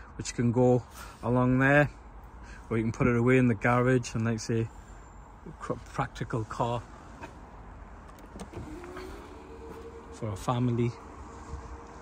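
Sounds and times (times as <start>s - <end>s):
electric tailgate motor whine: 8.2s - 12.0s.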